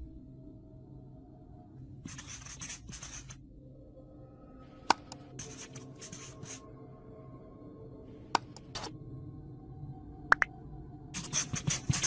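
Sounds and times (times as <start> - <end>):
soft background music: 0.0 - 12.0
marker pen scratchy strokes: 2.1 - 3.4, 5.4 - 6.6, 11.2 - 12.0.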